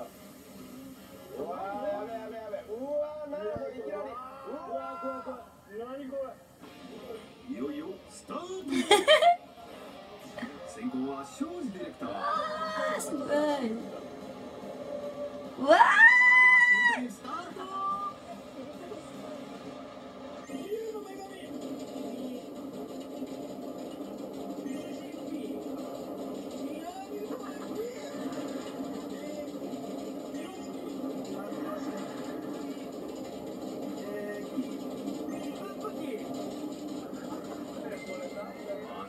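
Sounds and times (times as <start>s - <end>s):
television background music: 0.0s - 39.0s.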